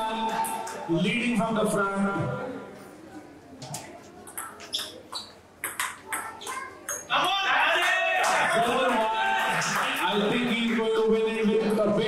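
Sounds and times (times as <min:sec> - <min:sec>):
ball bouncing on table: 0:03.6 - 0:07.1
table tennis ball hitting paddles: 0:03.6 - 0:07.1.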